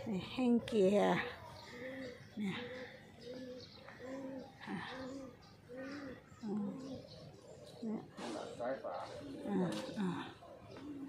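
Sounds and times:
dove cooing: 0.0 - 11.0.

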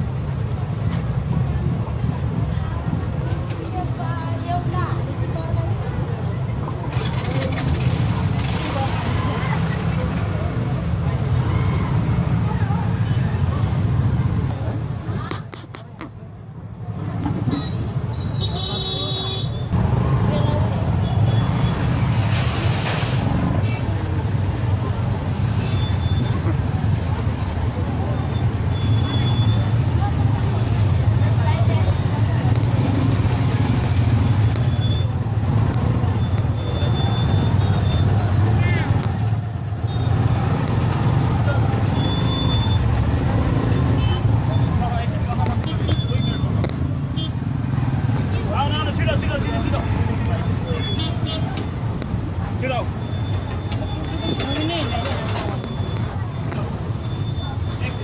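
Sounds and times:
crowd chatter: 0.0 - 58.0
motorcycle and car traffic rumble: 0.0 - 58.0.

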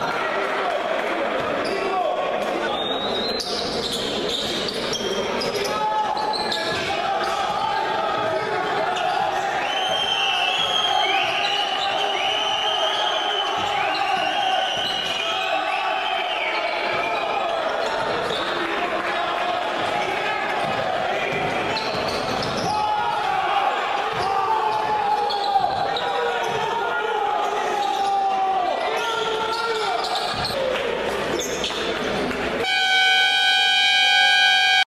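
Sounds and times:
players and crowd shouting: 0.0 - 31.6
basketball bouncing: 24.1 - 24.8
scoreboard buzzer: 32.6 - 34.9.

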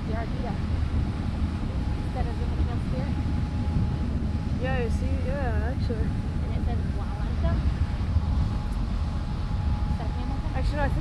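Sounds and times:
faint steady hum: 0.0 - 11.0
propeller churning water: 0.0 - 11.0
ship engine rumble: 0.0 - 11.0.

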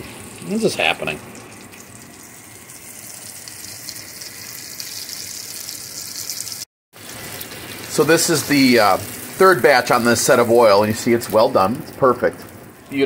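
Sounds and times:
cutlets sizzling in hot oil: 0.0 - 13.0.

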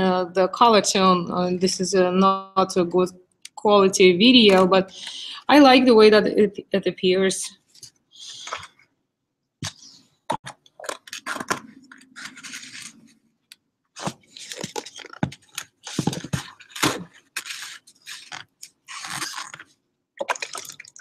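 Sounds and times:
liquid sloshing: 20.2 - 21.0.

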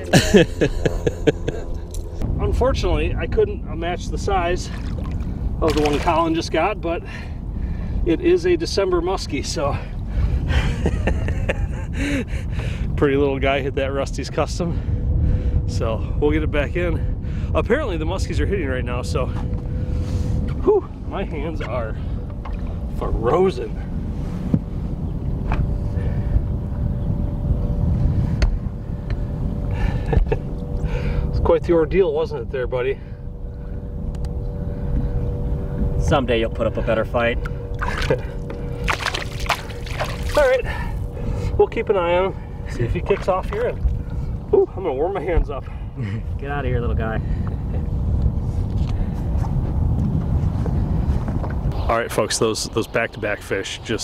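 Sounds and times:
motor hum: 0.0 - 2.8, 18.6 - 51.7
wind rumble on microphone: 0.0 - 54.0
lake water lapping: 4.6 - 6.4, 37.7 - 41.6, 42.6 - 44.6.

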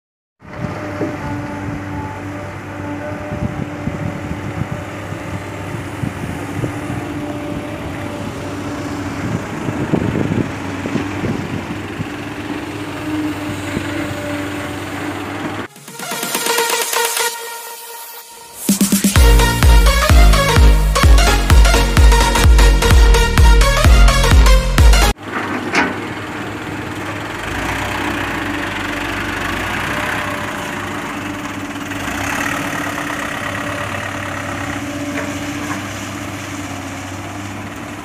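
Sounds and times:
diesel truck engine running: 0.4 - 38.0
electronic dance music: 15.7 - 25.2.

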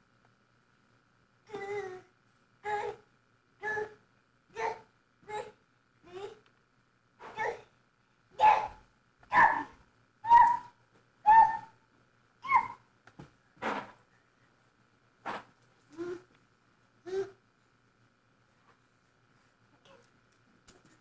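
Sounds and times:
dog barking: 8.4 - 9.7.

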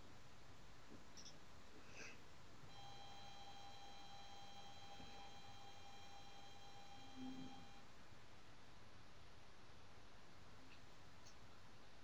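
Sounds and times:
high electronic whine: 2.7 - 7.8.

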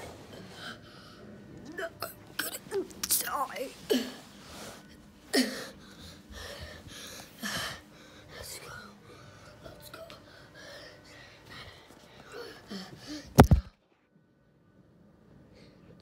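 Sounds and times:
person breathing hard and gasping: 3.9 - 13.6.

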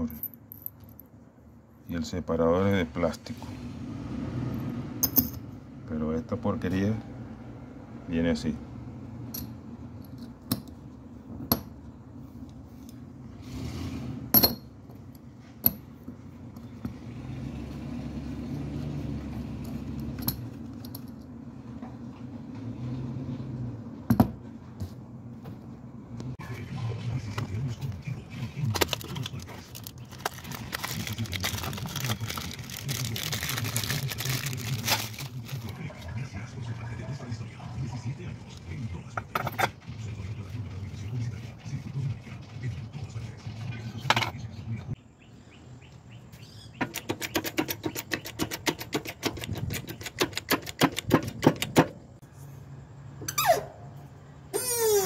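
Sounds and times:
metal bearing parts clinking: 0.0 - 1.2, 5.0 - 5.5, 9.3 - 10.8, 14.3 - 17.0, 18.5 - 21.4, 46.8 - 52.0.

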